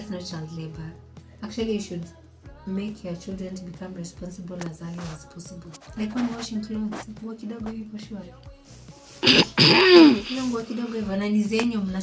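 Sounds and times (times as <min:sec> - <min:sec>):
person clearing throat: 0:09.2 - 0:10.6.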